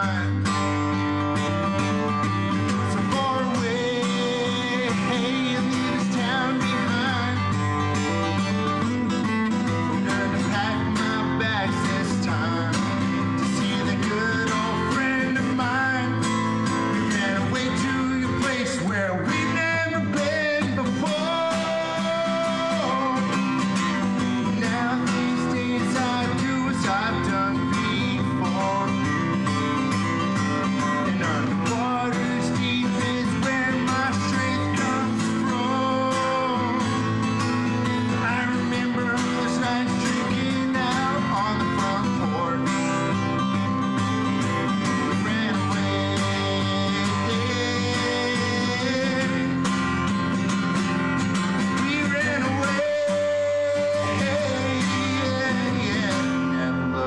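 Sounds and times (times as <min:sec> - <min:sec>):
acoustic guitar strumming: 0:00.0 - 0:57.0
man singing: 0:00.0 - 0:57.0.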